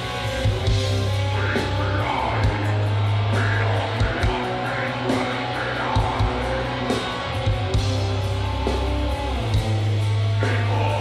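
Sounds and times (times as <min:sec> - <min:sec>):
distorted electric guitars: 0:00.0 - 0:11.0.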